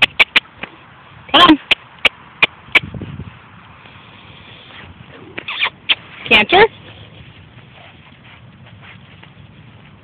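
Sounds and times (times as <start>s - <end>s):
squeaky kissing sounds: 0.0s - 0.5s, 5.4s - 6.1s
tongue clicks: 0.0s - 0.7s.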